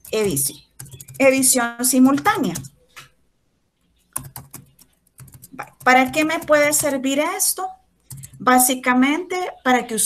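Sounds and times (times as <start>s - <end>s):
computer keyboard typing: 0.0s - 3.1s, 4.0s - 8.7s.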